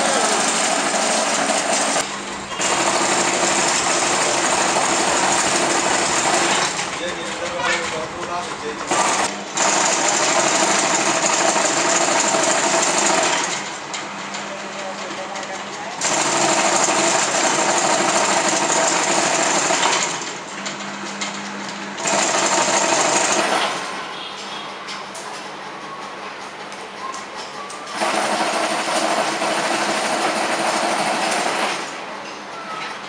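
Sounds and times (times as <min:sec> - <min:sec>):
net machine mechanical rattle: 0:00.0 - 0:24.0.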